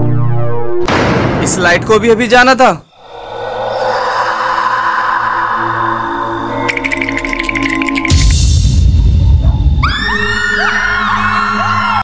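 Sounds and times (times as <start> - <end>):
eerie drone music: 2.9 - 12.0.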